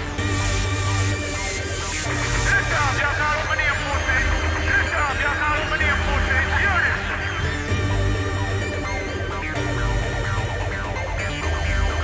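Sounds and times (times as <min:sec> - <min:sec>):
electronic dance music: 0:00.0 - 0:12.0
steady bass line: 0:00.0 - 0:12.0.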